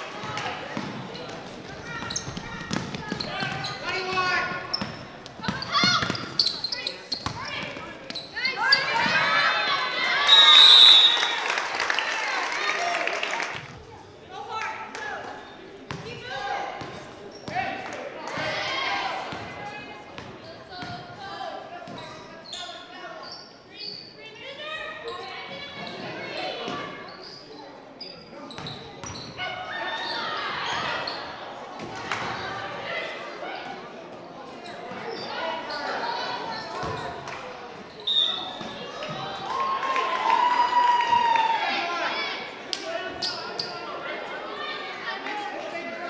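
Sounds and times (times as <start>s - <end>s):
spectators and players talking: 0.0s - 46.0s.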